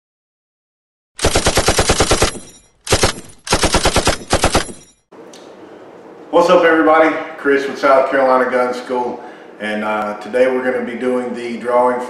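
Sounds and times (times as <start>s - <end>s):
automatic gunfire bursts: 1.2s - 4.9s
faint room hum: 5.1s - 12.0s.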